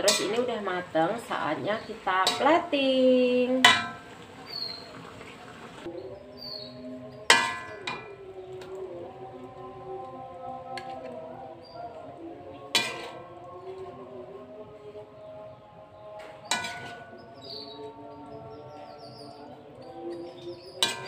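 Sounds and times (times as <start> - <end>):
metal spatula clanging on wok: 0.0 - 2.8, 3.5 - 4.1, 7.3 - 8.2, 12.7 - 13.4, 16.3 - 17.3, 20.3 - 21.0.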